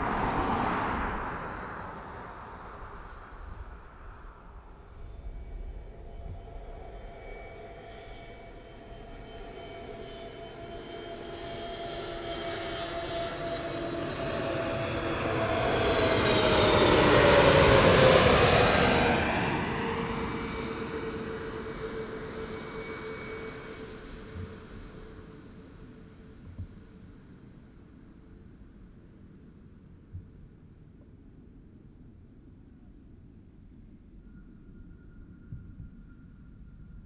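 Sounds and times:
jet engines whining overhead: 0:00.0 - 0:27.2.

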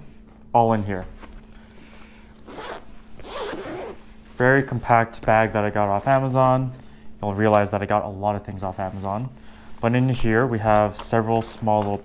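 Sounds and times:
zipper being pulled open: 0:02.4 - 0:04.2.

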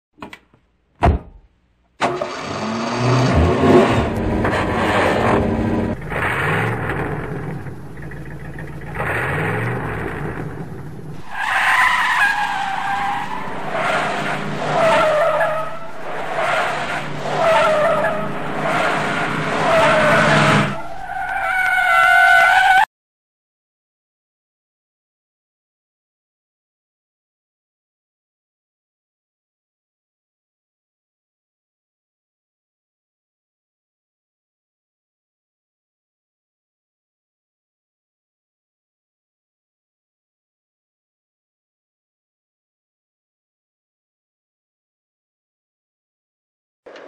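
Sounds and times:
car engine revving: 0:02.0 - 0:22.7
tyre squeals: 0:11.2 - 0:22.9.

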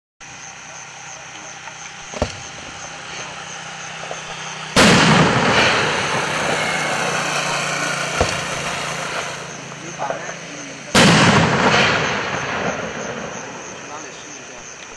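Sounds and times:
firework cracks: 0:04.0 - 0:10.2, 0:10.9 - 0:14.0
loud firework bang with rumble: 0:04.8 - 0:06.7, 0:08.1 - 0:09.2, 0:10.9 - 0:13.7.

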